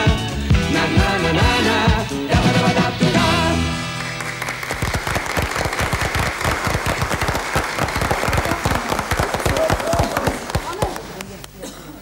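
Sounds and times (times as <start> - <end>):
audience applauding: 3.8 - 11.6.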